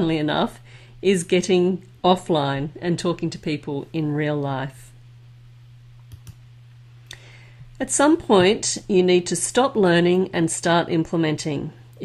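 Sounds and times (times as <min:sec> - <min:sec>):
woman speaking: 0:00.0 - 0:05.0, 0:07.8 - 0:11.8
low hum: 0:00.0 - 0:12.0.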